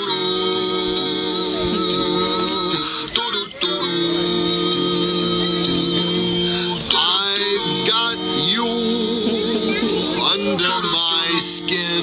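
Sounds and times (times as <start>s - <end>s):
guitar: 0.0s - 12.0s
song over loudspeakers: 0.0s - 12.0s
voices sliding up and down: 0.0s - 12.0s.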